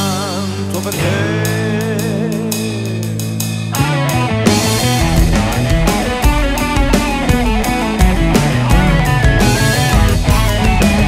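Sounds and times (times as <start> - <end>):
electric guitar: 0.0 - 11.0
electronic drum kit: 0.0 - 11.0.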